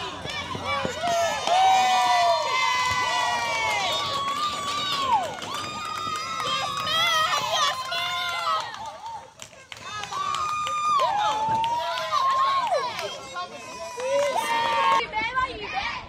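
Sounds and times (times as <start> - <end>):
crowd yelling and cheering: 0.0 - 16.0.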